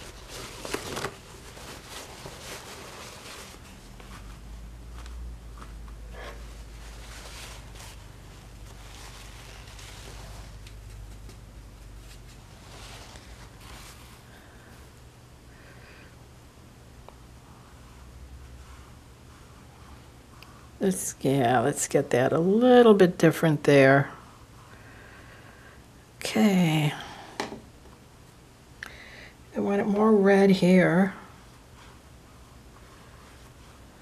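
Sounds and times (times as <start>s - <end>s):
faint rustles: 0.0s - 16.2s
low steady hum: 0.0s - 34.0s.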